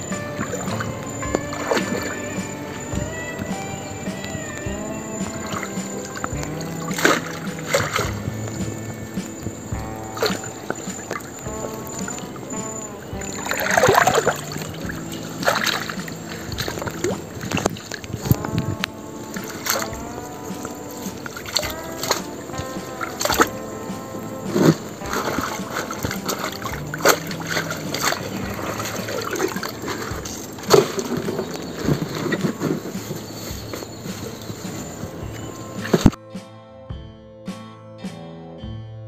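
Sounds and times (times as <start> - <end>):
water splashing and sloshing: 0.0 - 36.2
background music: 0.0 - 39.0.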